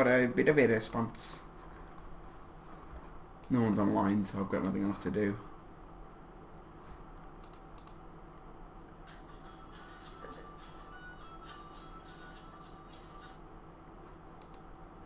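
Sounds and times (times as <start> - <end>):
low electrical hum: 0.0 - 15.0
computer mouse clicks: 7.2 - 8.4, 14.4 - 14.7.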